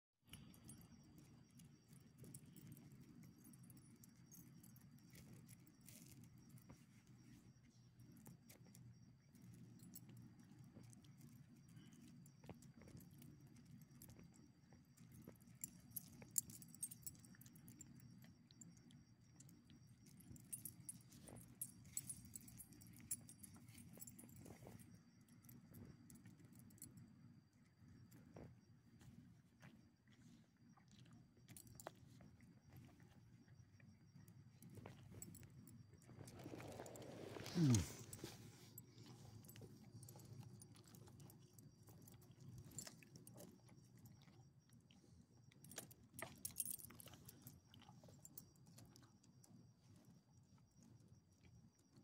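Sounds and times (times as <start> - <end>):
dog collar tags jingling: 15.4 - 17.9, 20.0 - 26.9, 37.5 - 38.2, 45.7 - 47.5.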